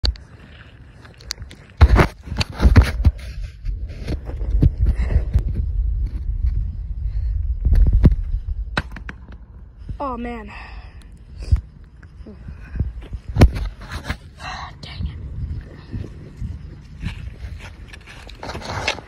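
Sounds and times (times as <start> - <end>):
low rumble: 3.0 - 18.5
sharp cracks and knocks: 7.7 - 9.5.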